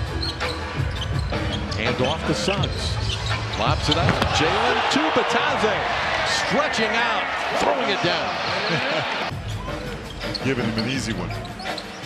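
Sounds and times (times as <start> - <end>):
basketball bouncing on hardwood: 3.9 - 4.5.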